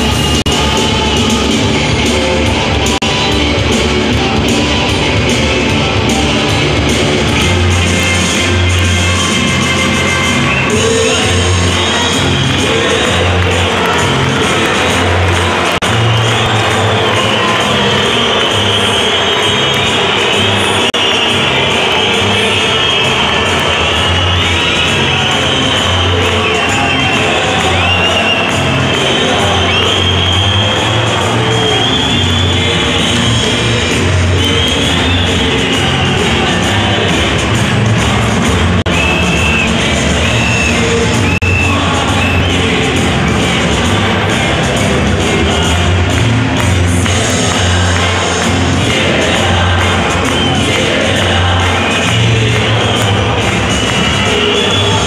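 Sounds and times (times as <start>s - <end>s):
crowd cheering: 0.0s - 55.0s
loud rock music over pa: 0.0s - 55.0s.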